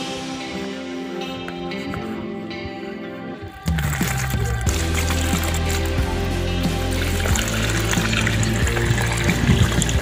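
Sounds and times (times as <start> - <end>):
background music with beat: 0.0 - 10.0
water pouring into bowl: 3.6 - 10.0.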